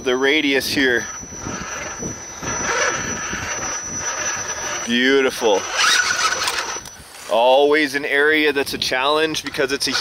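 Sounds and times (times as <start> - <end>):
rc car motor and drivetrain: 0.0 - 7.4, 8.9 - 10.0.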